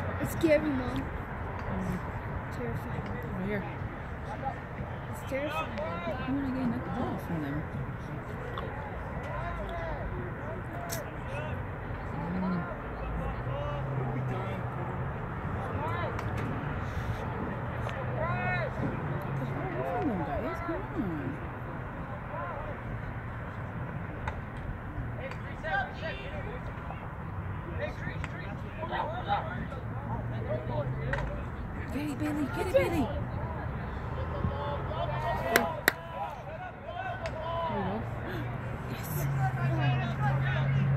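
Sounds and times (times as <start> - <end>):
outdoor ambient noise: 0.0 - 40.9.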